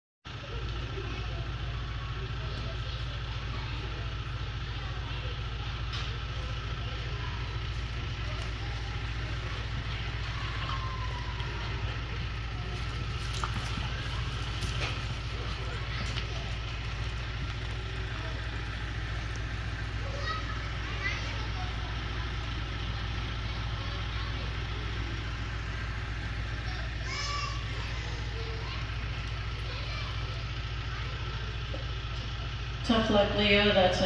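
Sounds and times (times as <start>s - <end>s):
low hum of arena room noise: 0.3s - 34.0s
indistinct background voices: 0.4s - 34.0s.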